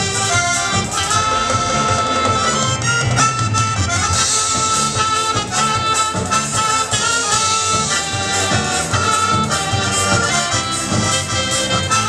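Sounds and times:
accordion melody: 0.0 - 12.0
folk dance band playing: 0.0 - 12.0.

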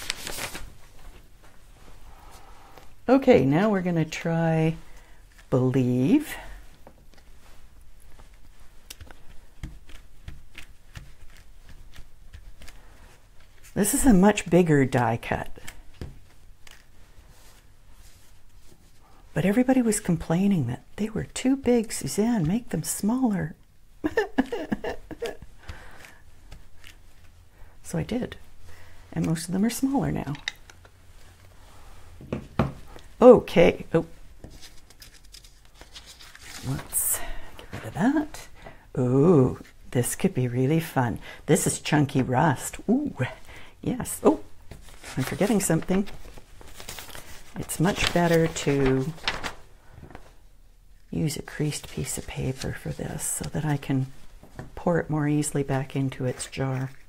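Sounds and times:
paper rustling: 0.0 - 2.4, 6.2 - 20.3, 24.0 - 27.4, 32.8 - 38.4, 44.2 - 50.4, 51.4 - 57.0.

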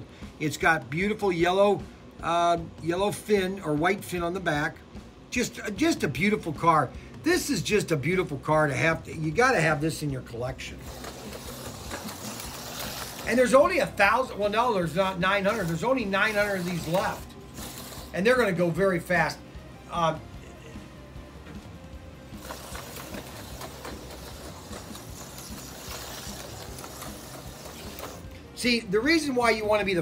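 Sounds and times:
slot car motor whirring: 7.4 - 30.0.

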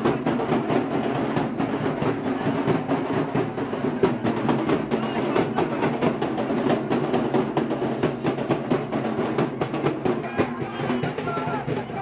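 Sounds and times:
barrel drums beaten with sticks: 0.0 - 12.0.

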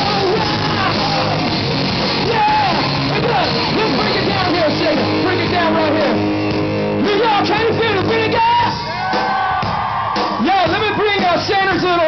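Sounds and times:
person singing and shouting: 0.0 - 1.5, 2.2 - 6.2, 7.0 - 9.7
live hard rock band: 0.0 - 12.0.

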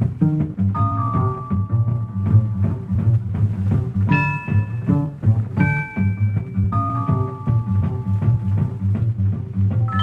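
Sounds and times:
upright bass and drums: 0.0 - 10.0.

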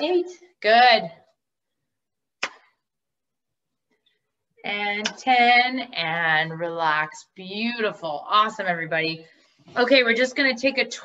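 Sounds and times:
sharp hand clap: 2.4 - 2.7.

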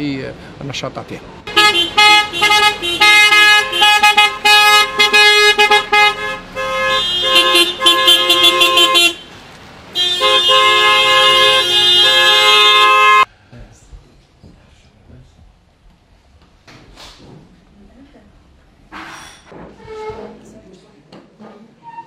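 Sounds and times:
car horns honking: 1.5 - 13.3.

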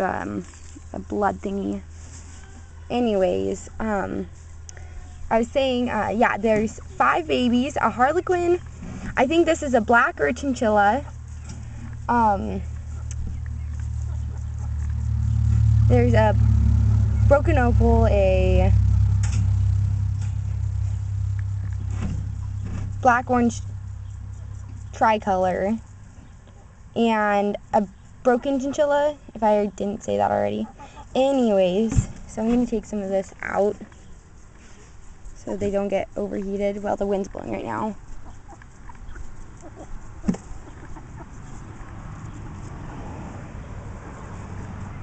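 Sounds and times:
rustling of fur: 0.2 - 15.7, 31.3 - 42.9
wind rumble on microphone: 11.8 - 25.8.

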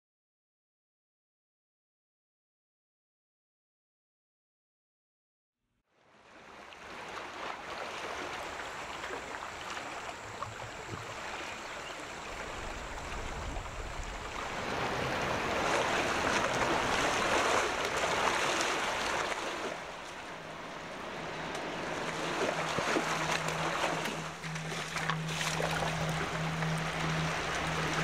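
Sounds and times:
surf washing over rocks: 6.8 - 28.0.

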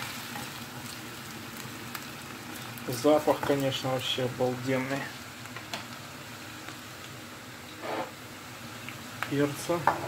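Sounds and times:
potatoes sizzling in oil: 0.0 - 10.0
range hood fan running: 0.0 - 10.0.

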